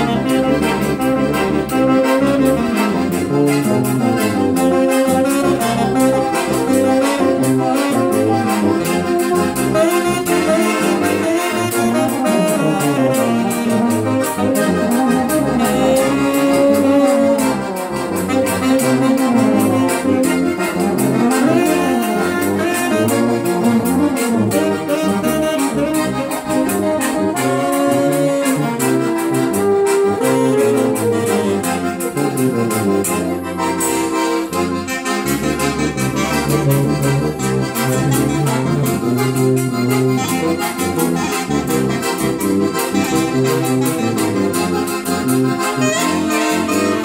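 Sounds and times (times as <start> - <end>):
accordion: 0.0 - 47.0
alto saxophone: 0.0 - 47.0
steady beat: 0.0 - 47.0.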